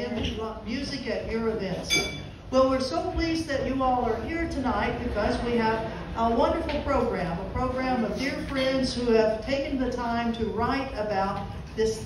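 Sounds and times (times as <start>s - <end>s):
woman talking into microphone: 0.0s - 12.0s.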